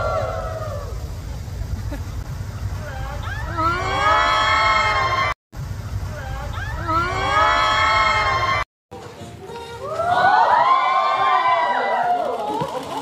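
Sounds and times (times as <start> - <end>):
low rumble: 0.0 - 8.6.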